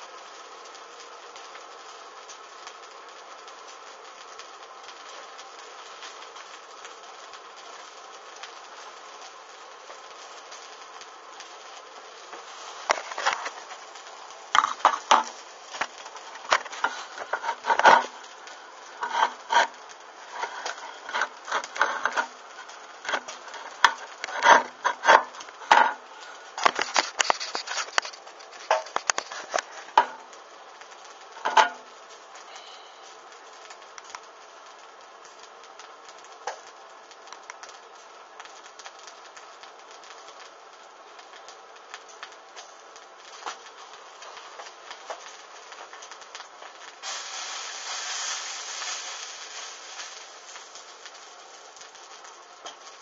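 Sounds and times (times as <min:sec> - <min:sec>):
fabric burning with hissing flame: 0:00.0 - 0:53.0.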